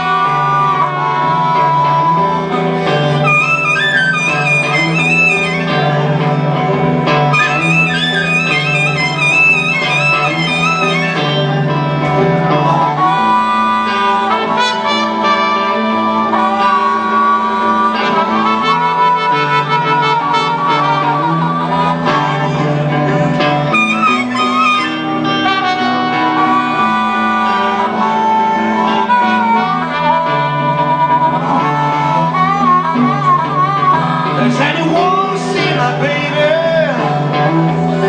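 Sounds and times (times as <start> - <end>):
lead instrument wavering phrases: 0.0 - 38.0
steady bass line: 0.0 - 38.0.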